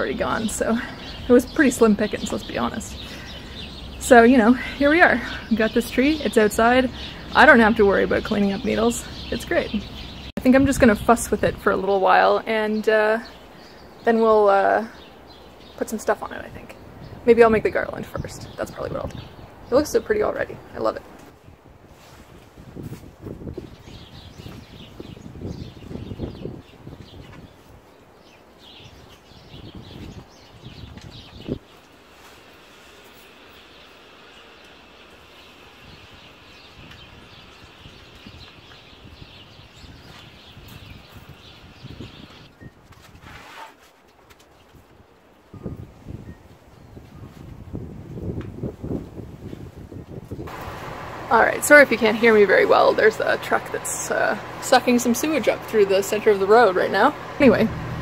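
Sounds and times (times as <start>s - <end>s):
birds chirping: 0.0s - 21.3s, 23.6s - 42.8s, 50.4s - 58.0s
rustling of branches: 0.0s - 58.0s.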